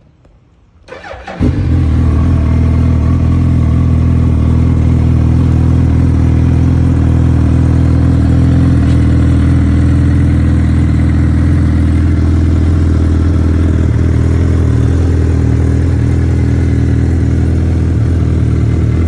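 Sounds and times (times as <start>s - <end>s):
motorcycle engine starting and idling: 0.8s - 19.0s.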